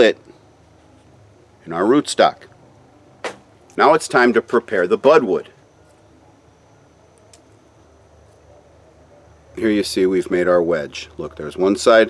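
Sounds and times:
faint high-pitched tone: 3.8s - 12.0s.

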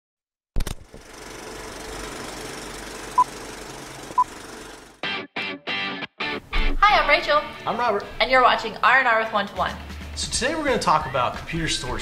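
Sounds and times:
mechanical rattling whir: 0.6s - 5.0s.

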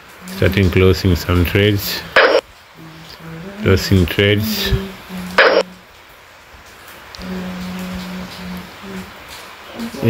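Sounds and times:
man humming: 2.8s - 5.8s, 7.2s - 9.2s.

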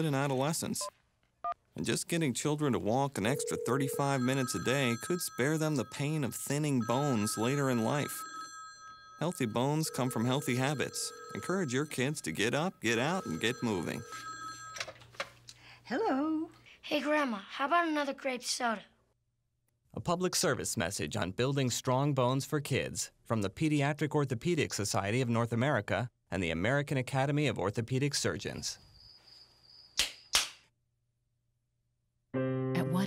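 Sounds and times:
telephone ringing: 3.2s - 15.4s
sharp snaps: 30.0s - 30.7s.

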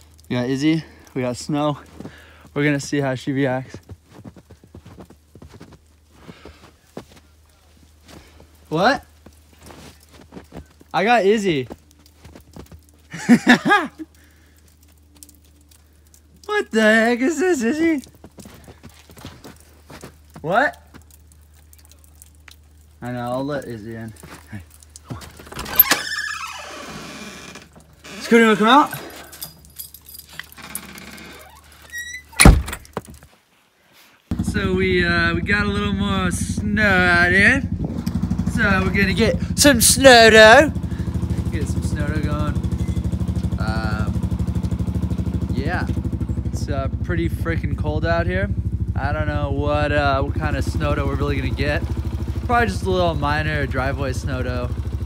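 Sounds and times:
footsteps crunching in snow: 1.7s - 13.2s, 18.0s - 21.1s
door squeaking: 25.4s - 29.6s, 30.5s - 32.9s
door thump shutting: 32.4s - 33.0s.

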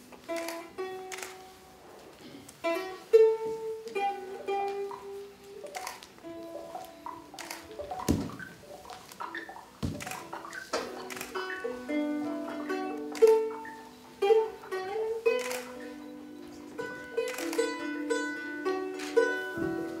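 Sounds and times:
plucked string instrument: 0.0s - 20.0s
sharp knocks: 6.6s - 11.1s.

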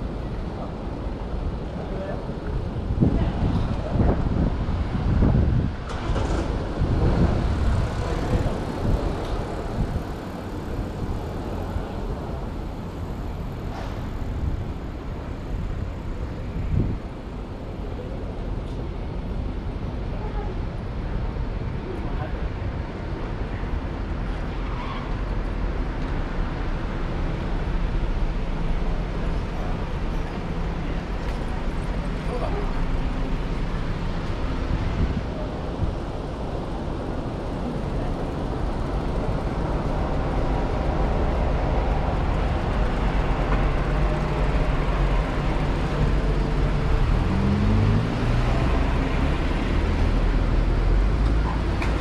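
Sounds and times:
traffic and passing cars: 0.0s - 52.0s
passersby talking: 28.8s - 47.0s.

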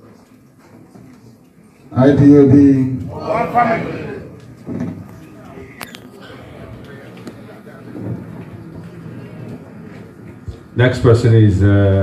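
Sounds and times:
murmur of faint voices: 0.0s - 12.0s
room noise: 0.0s - 12.0s.

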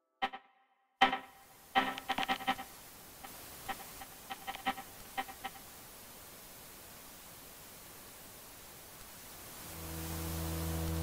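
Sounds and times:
glitchy buzzy stutter bursts: 1.0s - 5.6s
static hiss: 1.0s - 11.0s.

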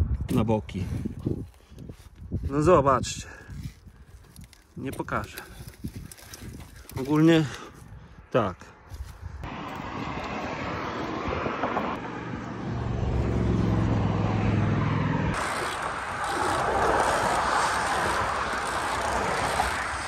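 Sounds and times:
wind and road noise: 0.0s - 20.0s
cars passing: 9.4s - 20.0s
motor vehicle engine hum: 9.4s - 20.0s.

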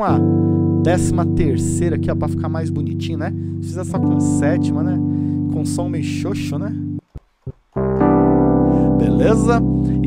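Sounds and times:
piano chords on keyboard: 0.0s - 7.1s, 7.8s - 10.0s.

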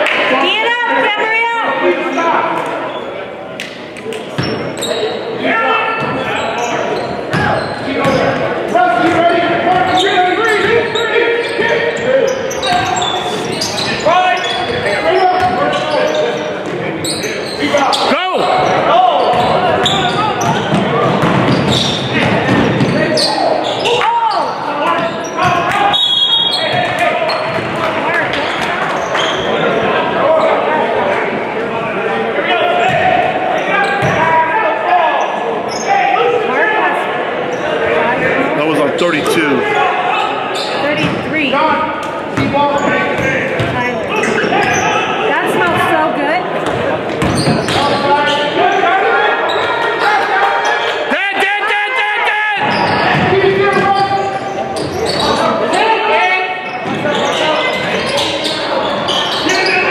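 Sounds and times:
crowd and player voices: 0.0s - 59.9s
sneakers squeaking on court: 4.3s - 5.2s, 6.0s - 27.8s, 28.4s - 29.6s, 33.8s - 34.3s, 40.2s - 41.4s, 42.2s - 48.6s, 49.4s - 50.8s, 52.6s - 55.7s, 56.6s - 59.9s
referee's whistle: 25.8s - 27.4s.

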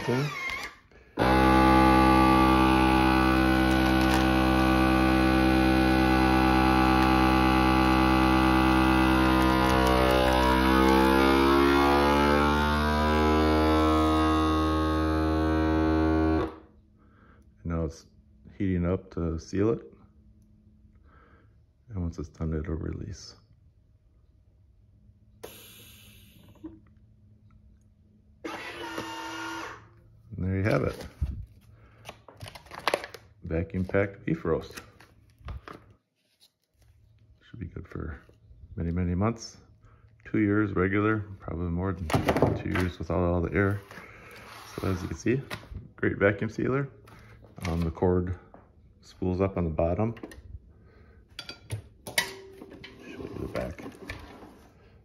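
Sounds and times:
vacuum sealer humming: 0.0s - 16.6s, 28.4s - 29.9s
vacuum sealer hissing: 1.2s - 16.5s, 25.4s - 26.6s.

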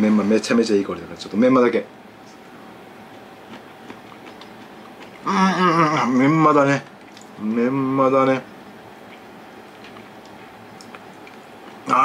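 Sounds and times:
room hiss: 0.0s - 12.0s
chewing crunchy food: 3.0s - 5.3s, 6.8s - 7.6s, 9.0s - 12.0s
soft crunchy clicks: 9.1s - 11.8s.

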